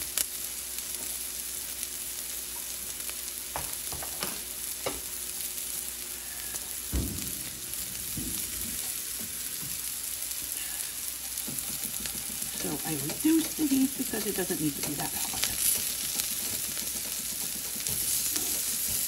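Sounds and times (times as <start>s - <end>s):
onions sizzling in a skillet: 0.0s - 19.0s.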